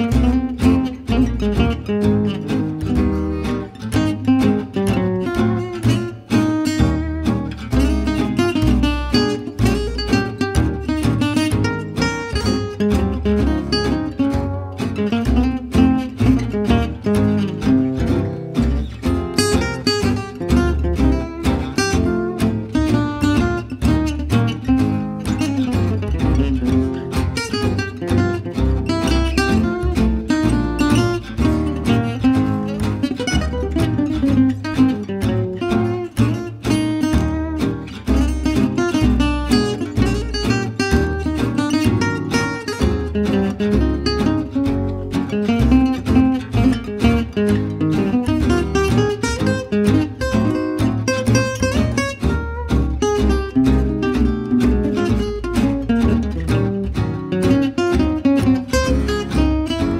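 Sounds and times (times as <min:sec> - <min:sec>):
acoustic guitar lead lines: 0:00.0 - 0:59.9
plucked double bass: 0:00.0 - 0:59.9
strummed rhythm guitar: 0:00.0 - 0:59.9.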